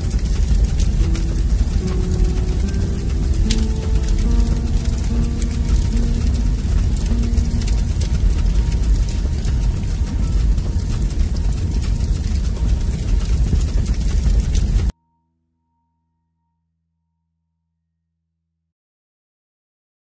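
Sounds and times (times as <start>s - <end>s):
crackles: 0.0s - 14.9s
loud low rumble: 0.0s - 14.9s
faint held musical notes: 0.0s - 15.9s.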